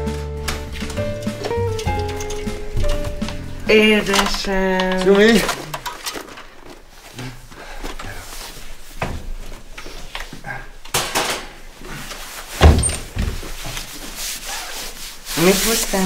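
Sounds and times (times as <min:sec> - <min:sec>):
bags rustling and knocking: 0:00.0 - 0:10.6, 0:11.2 - 0:14.1
heavy thump: 0:12.6 - 0:13.5.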